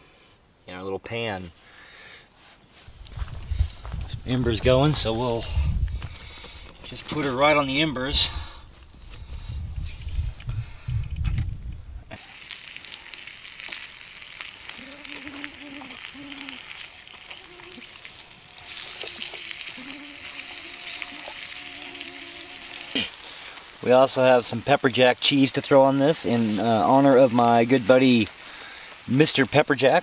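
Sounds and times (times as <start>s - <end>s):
food sizzling in a pan: 12.2s - 24.9s.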